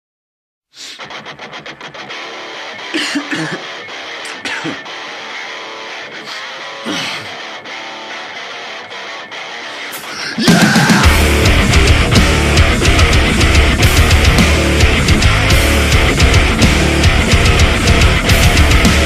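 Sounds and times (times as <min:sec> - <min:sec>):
electric guitar riff: 0:00.8 - 0:19.0
guitar slides: 0:00.8 - 0:19.0
full rock band playing: 0:01.1 - 0:19.0.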